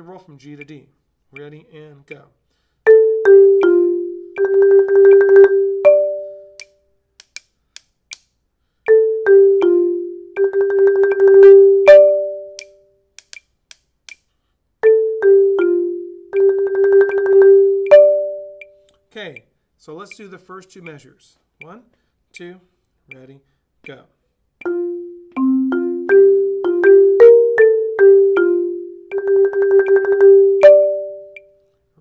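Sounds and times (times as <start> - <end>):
marimba played with yarn mallets: 2.9 - 6.8, 8.9 - 12.8, 14.8 - 18.8, 24.6 - 31.6.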